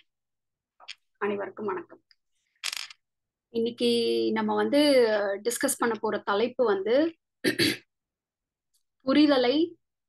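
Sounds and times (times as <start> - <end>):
person clearing throat: 7.4 - 7.9.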